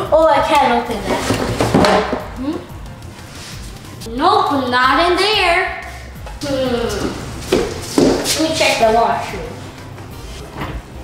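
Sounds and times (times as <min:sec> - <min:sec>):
child's voice: 0:00.0 - 0:01.4, 0:04.1 - 0:07.1, 0:08.3 - 0:09.5.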